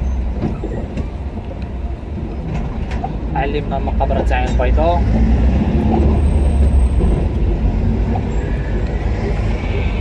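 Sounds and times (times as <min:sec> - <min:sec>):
car interior engine and road noise: 0:00.0 - 0:10.0.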